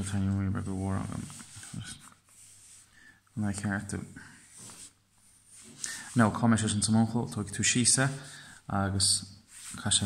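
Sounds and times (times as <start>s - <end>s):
pencil moving on paper: 1.0s - 3.0s, 4.3s - 6.4s.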